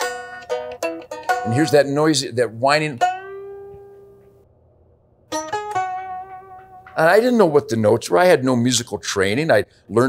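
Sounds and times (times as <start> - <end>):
electric guitar bluesy lick: 2.9 - 4.3, 5.3 - 7.2.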